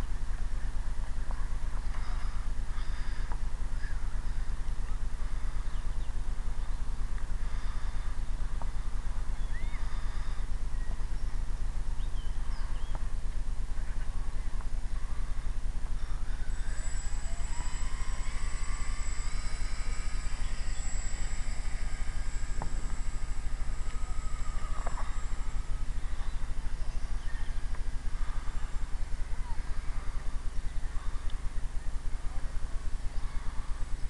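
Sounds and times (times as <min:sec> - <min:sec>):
small electric motor whining: 0:15.0 - 0:34.0.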